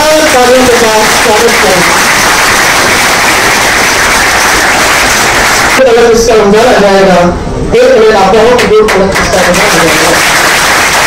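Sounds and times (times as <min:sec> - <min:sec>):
audience applauding: 0:00.0 - 0:05.8, 0:08.8 - 0:11.0.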